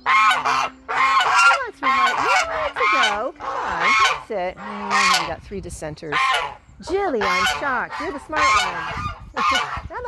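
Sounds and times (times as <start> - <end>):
geese honking: 0.0 - 10.0.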